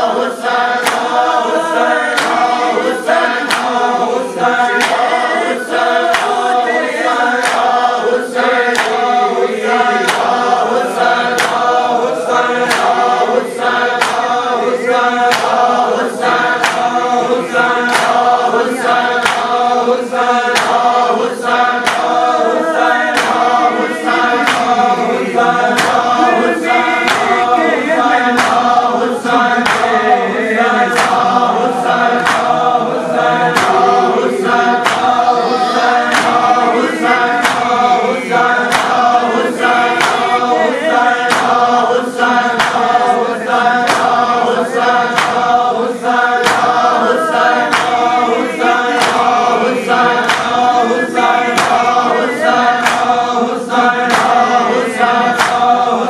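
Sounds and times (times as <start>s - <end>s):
hands slapping chests: 0.0s - 56.0s
men chanting in unison: 0.0s - 56.0s.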